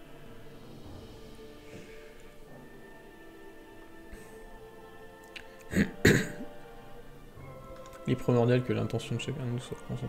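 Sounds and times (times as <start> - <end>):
quiet background music: 0.0 - 10.0
man coughing: 5.7 - 6.5.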